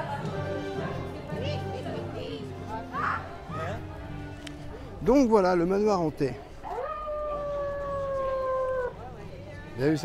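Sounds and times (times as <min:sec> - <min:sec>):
wolf howl: 0:06.6 - 0:09.1.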